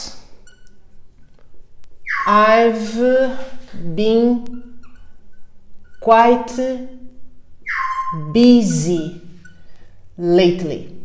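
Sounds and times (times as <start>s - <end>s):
high marker squeak: 0.0s - 1.1s, 2.0s - 6.7s, 7.6s - 10.0s
marker writing on whiteboard: 0.1s - 6.6s.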